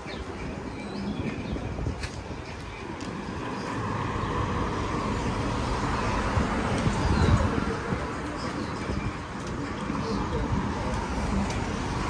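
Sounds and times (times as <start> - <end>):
steady low traffic rumble: 0.0 - 12.0.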